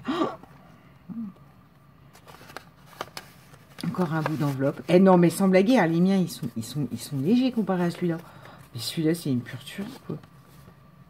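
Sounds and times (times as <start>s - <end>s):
paper pages rustling: 2.0s - 8.9s.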